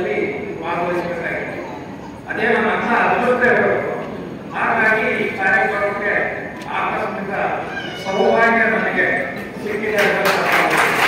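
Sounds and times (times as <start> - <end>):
man speaking over sound system: 0.0 - 11.0.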